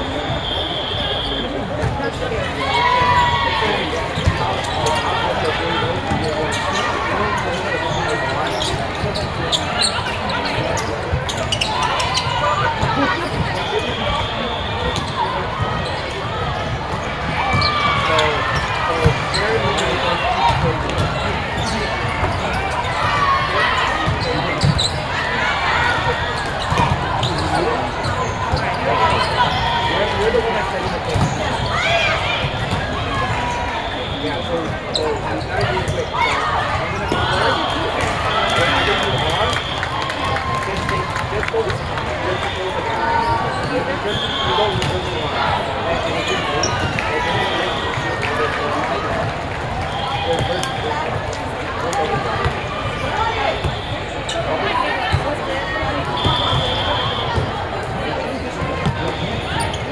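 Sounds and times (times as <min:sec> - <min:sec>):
indistinct voices in echoing hall: 0:00.0 - 0:59.9
sneaker squeaks on court: 0:04.1 - 0:12.6, 0:23.8 - 0:25.1, 0:26.3 - 0:29.6, 0:31.1 - 0:31.8, 0:58.8 - 0:59.9.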